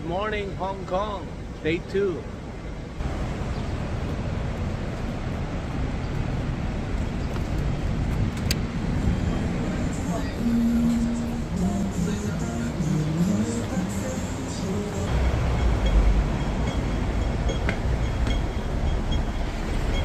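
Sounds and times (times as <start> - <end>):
city street traffic: 0.0 - 20.0
voices or music: 9.8 - 15.2.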